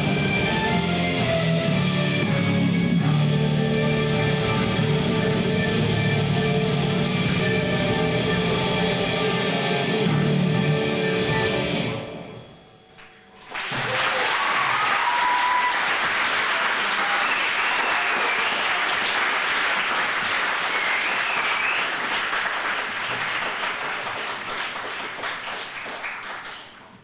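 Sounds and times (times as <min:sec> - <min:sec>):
audience applauding: 0:13.4 - 0:27.0
whistles: 0:17.0 - 0:18.7, 0:20.6 - 0:22.1.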